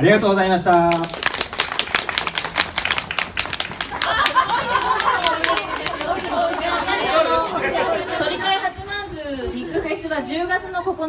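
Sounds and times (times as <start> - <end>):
audience applause: 0.9 - 8.4.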